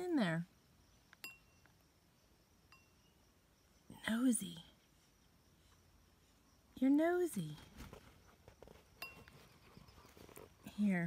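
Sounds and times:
beak clinking on bowl: 1.2 - 1.7.

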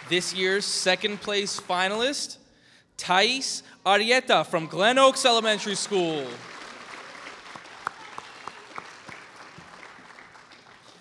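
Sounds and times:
audience applauding: 0.0 - 2.0, 4.7 - 11.0.

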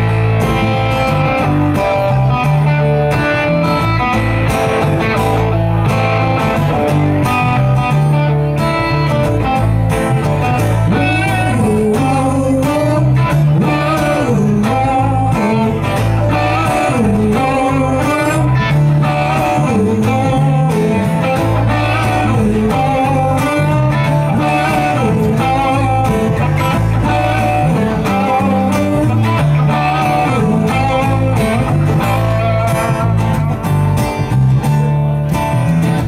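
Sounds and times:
live blues-rock band playing: 0.0 - 36.0.

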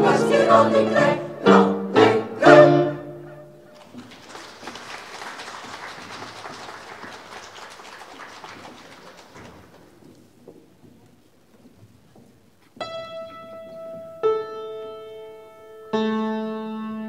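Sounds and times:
audience applauding: 3.8 - 10.2.

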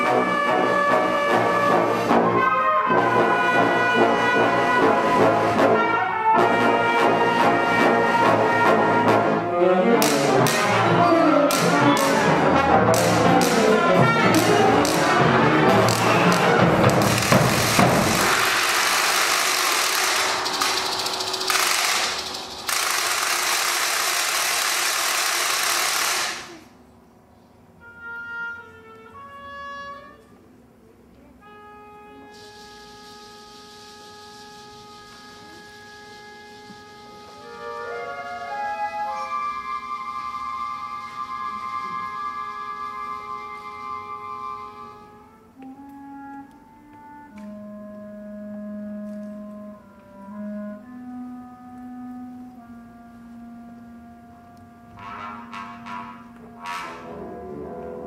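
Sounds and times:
rapid percussion rattle: 10.0 - 10.8, 11.5 - 26.6.

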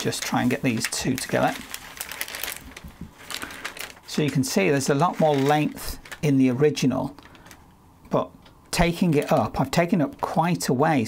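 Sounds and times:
paper rustling and crackling: 0.0 - 7.6, 8.8 - 10.2.

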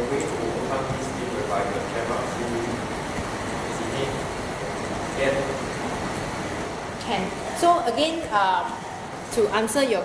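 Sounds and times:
room noise hiss and hum: 0.0 - 10.0.

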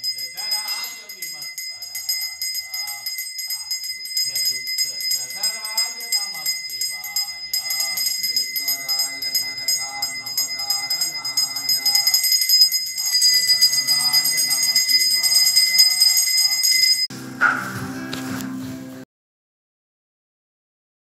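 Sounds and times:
handbell ringing rapidly: 0.0 - 17.1
voices chanting: 0.0 - 18.2.

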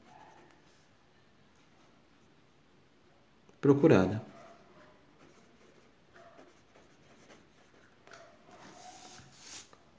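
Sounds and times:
pen scratching on paper: 5.2 - 9.7.

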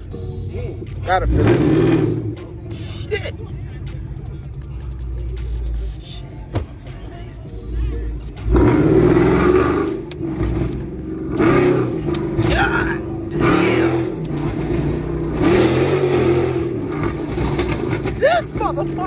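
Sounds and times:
car engine accelerating hard: 0.0 - 5.9, 8.4 - 19.0.

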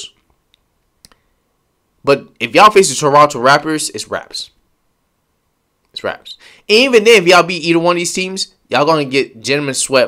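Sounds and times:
faint clicks: 0.2 - 1.2.

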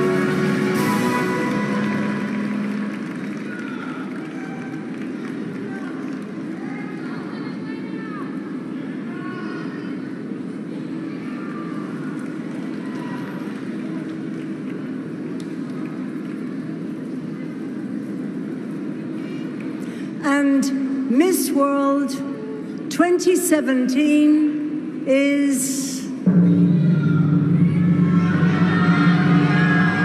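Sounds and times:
murmur of large audience: 0.0 - 30.0.

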